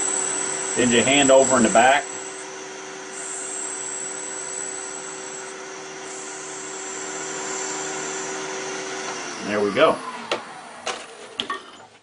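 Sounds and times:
wood lathe winding down: 0.0 - 11.4.

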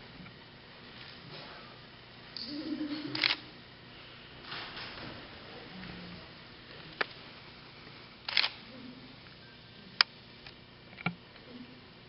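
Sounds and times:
sharp clicks: 8.3 - 8.6.

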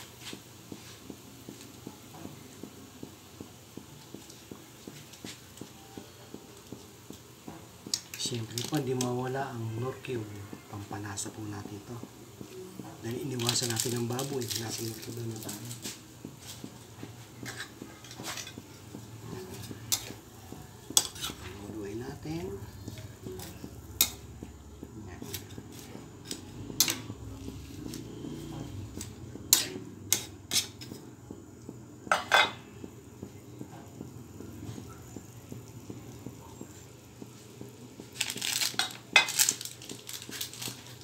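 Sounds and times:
faint crackles: 0.0 - 30.9, 33.2 - 41.0
bean sprouts cooking in a wok: 0.0 - 41.0.

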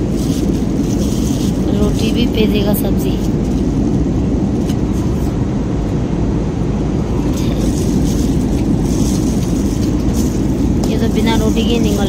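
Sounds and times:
air rushing past fuselage: 0.0 - 12.0
engines rumbling: 0.0 - 12.0.

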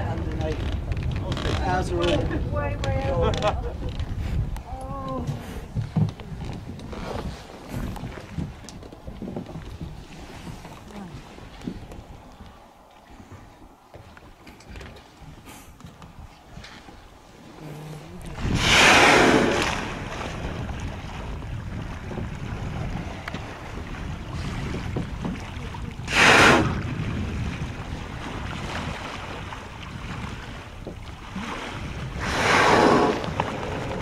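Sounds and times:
wind and sea rushing: 0.0 - 34.0
whale blowing: 17.4 - 20.6, 26.0 - 27.4, 31.2 - 34.0.

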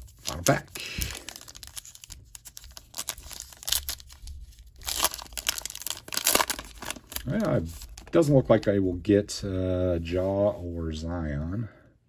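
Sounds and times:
foil wrapper tearing and crinkling: 0.0 - 8.2.

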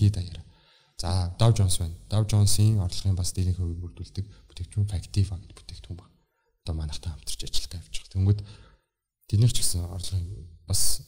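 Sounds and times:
man speaking into microphone: 0.0 - 8.6, 9.2 - 11.0.

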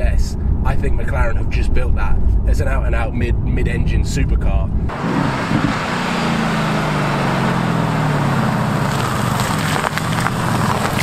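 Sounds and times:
car engine approaching: 4.6 - 11.0.

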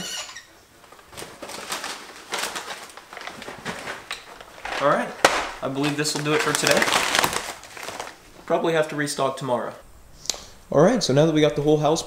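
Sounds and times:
plastic snack bags crinkling: 0.7 - 8.7.

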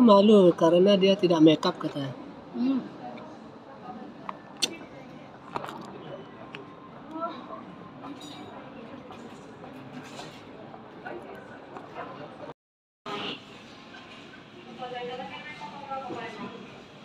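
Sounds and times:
murmur of distant voices: 0.0 - 17.0.

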